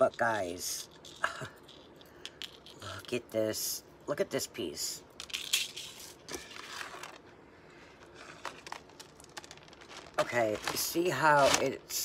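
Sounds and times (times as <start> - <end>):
packaging crinkling and rustling: 5.2 - 12.0.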